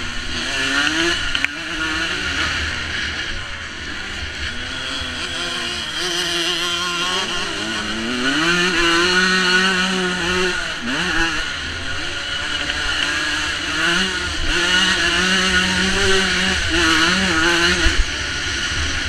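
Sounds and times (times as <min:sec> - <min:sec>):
motocross bike engine revving: 0:00.0 - 0:19.0.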